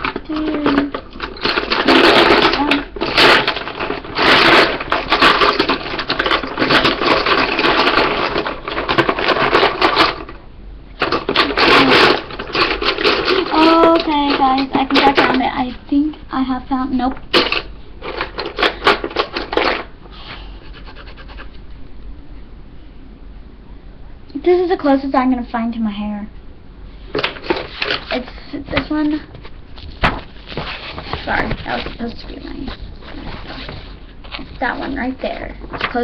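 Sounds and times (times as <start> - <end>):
colouring utensils rattling: 0.0 - 10.4, 11.0 - 15.7, 17.0 - 19.9, 30.1 - 36.0.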